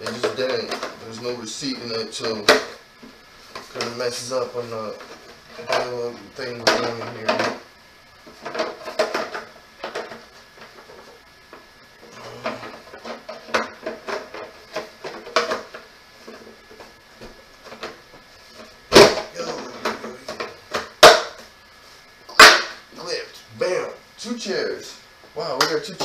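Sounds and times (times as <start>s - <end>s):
plastic parts clicking and knocking: 8.4s - 11.0s, 12.4s - 16.8s.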